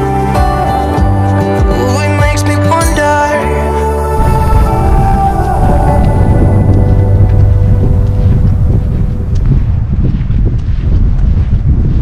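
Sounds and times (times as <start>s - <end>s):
wind buffeting microphone: 4.2s - 12.0s.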